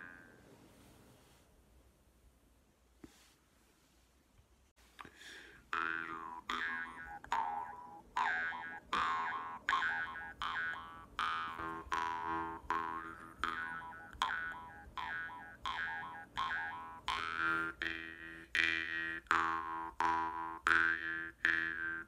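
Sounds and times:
jaw harp twanging: 5.7s - 22.0s.

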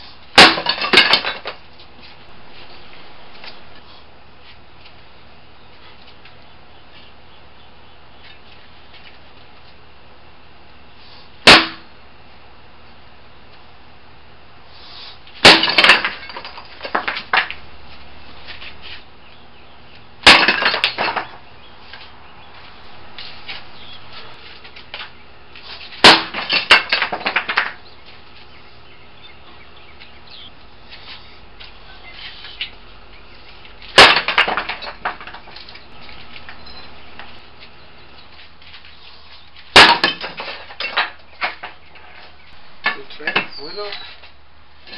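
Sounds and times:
concrete fragments clattering: 0.4s - 1.6s, 15.4s - 17.6s, 20.2s - 21.4s, 26.0s - 27.8s, 33.8s - 35.8s, 39.7s - 44.1s
concrete slab cracking: 20.2s - 21.4s, 33.9s - 35.4s.

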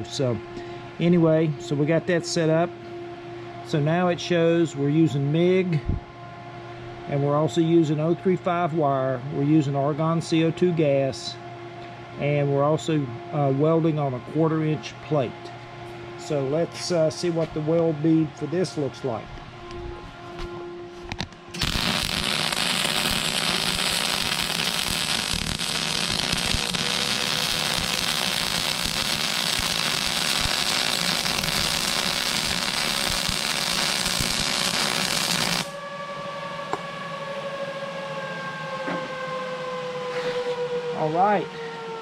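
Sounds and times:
hum falling in pitch: 11.0s - 42.0s
welding arc crackle: 21.6s - 35.8s.

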